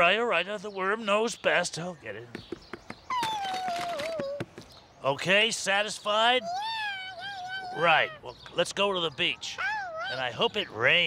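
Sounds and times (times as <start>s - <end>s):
squeaky cartoon voice squeal: 3.1s - 4.4s, 6.3s - 8.3s, 9.4s - 10.5s.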